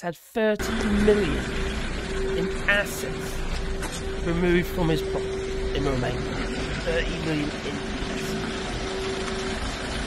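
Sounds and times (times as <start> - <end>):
constant hum: 0.6 - 10.0
truck engines and road noise: 0.6 - 10.0.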